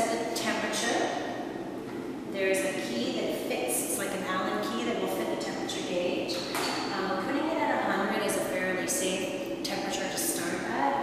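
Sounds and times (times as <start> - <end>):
woman speaking: 0.0 - 1.3, 2.3 - 11.0.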